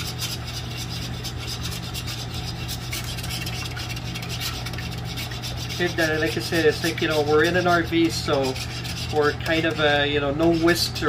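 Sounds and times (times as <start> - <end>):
fork scraping a baking pan: 0.0 - 11.0.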